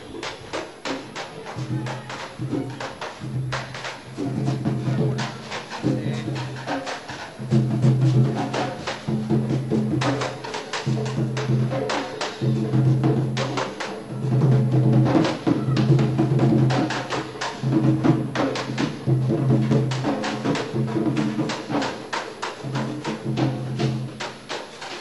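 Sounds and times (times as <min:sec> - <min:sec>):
hand and stick drums: 0:00.0 - 0:25.0.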